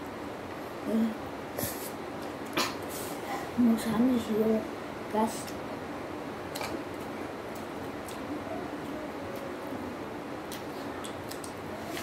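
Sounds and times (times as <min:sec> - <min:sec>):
child chewing food: 0:06.5 - 0:09.8, 0:10.4 - 0:12.0.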